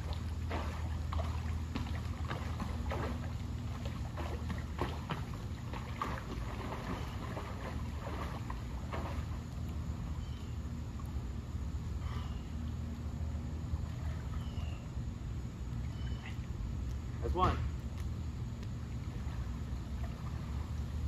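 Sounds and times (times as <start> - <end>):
water splashing in pool: 0.0 - 10.2, 13.2 - 21.0
steady low hum: 0.0 - 21.0.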